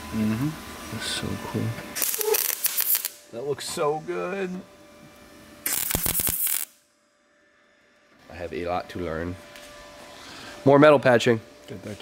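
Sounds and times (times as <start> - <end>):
welder arc crackling: 1.9 - 4.5, 5.6 - 6.8.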